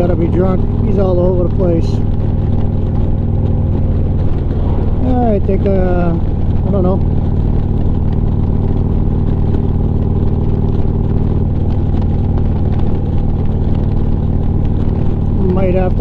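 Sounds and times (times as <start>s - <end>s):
motorcycle engine cruising: 0.0s - 16.0s
wind and road noise: 0.0s - 16.0s.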